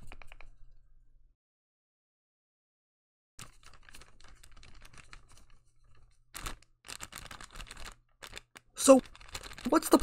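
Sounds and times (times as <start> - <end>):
paper bags rustling and clicking: 3.4 - 10.0.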